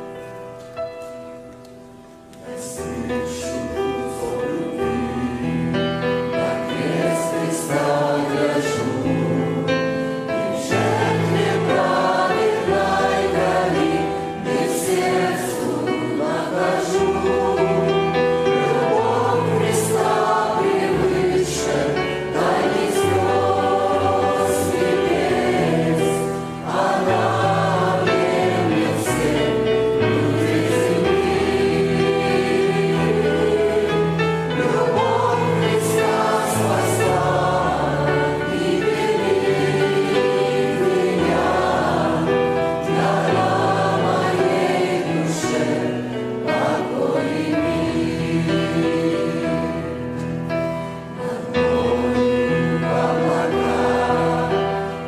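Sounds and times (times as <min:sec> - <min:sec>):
grand piano: 0:00.0 - 0:55.0
choir singing a hymn: 0:02.4 - 0:55.0.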